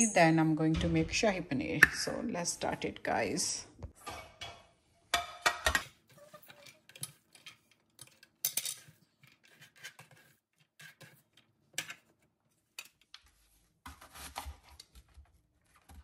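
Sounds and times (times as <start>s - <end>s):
knife scraping cutting board: 9.3s - 11.2s.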